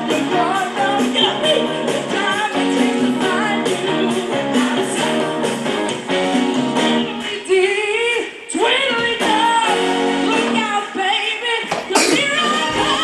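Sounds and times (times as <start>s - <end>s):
woman singing into microphone: 0.0s - 5.7s, 7.0s - 13.0s
live band with guitar: 0.0s - 11.0s.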